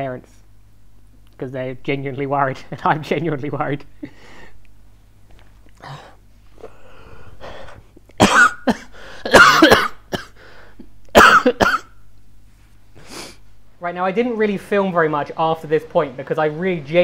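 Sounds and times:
man breathing heavily: 0:04.0 - 0:04.7, 0:05.8 - 0:07.9, 0:08.9 - 0:09.3, 0:10.4 - 0:10.9
man coughing loudly: 0:08.2 - 0:10.4, 0:11.1 - 0:12.0.

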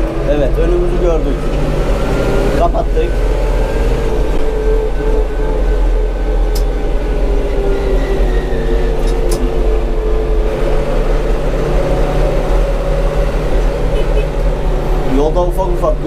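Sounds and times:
tractor diesel engine drone: 0:00.0 - 0:16.0.

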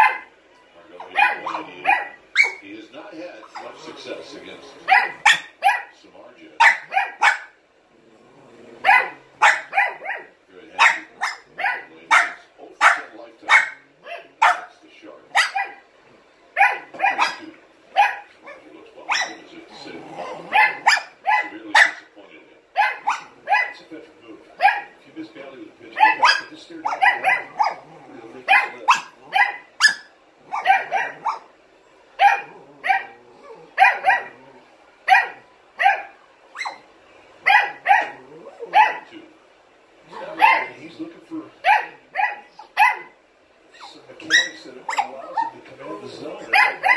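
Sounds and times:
puppy barking: 0:00.0 - 0:00.3, 0:01.0 - 0:02.6, 0:04.8 - 0:06.0, 0:06.6 - 0:07.6, 0:08.8 - 0:14.7, 0:15.3 - 0:15.8, 0:16.6 - 0:19.5, 0:20.1 - 0:22.1, 0:22.8 - 0:23.8, 0:24.6 - 0:25.0, 0:26.0 - 0:31.5, 0:32.2 - 0:39.1, 0:40.1 - 0:40.8, 0:41.6 - 0:43.2, 0:43.8 - 0:45.6, 0:46.4 - 0:46.9.

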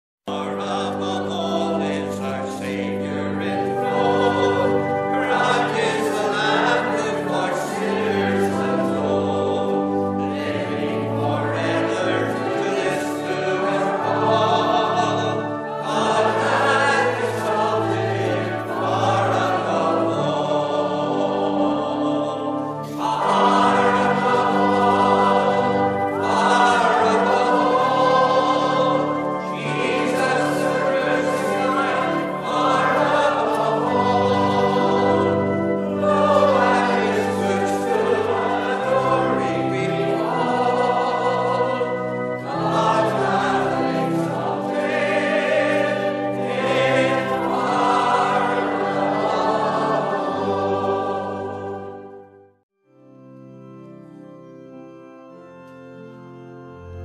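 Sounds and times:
choir singing a hymn: 0:00.3 - 0:52.5
organ chords: 0:00.3 - 0:57.0.

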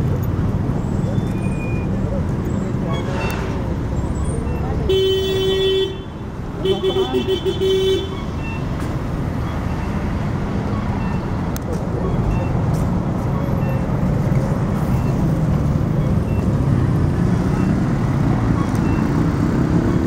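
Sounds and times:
street traffic: 0:00.0 - 0:20.0
faint voices: 0:10.5 - 0:15.5.

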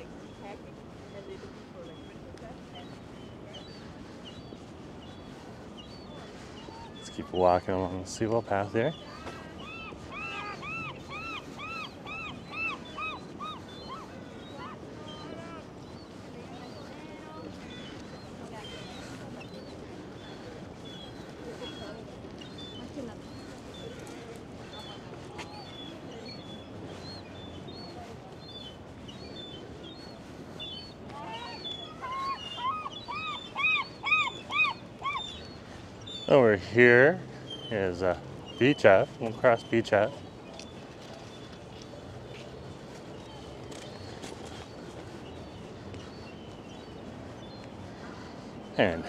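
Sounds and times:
small birds chirping: 0:00.0 - 0:49.0
gull calling: 0:09.1 - 0:15.6, 0:31.1 - 0:35.6.

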